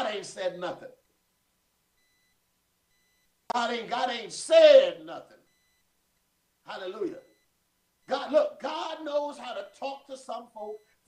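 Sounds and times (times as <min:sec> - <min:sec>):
faint high electronic beep: 0:02.0 - 0:03.3, 0:05.4 - 0:05.9, 0:07.1 - 0:08.4, 0:09.3 - 0:11.0.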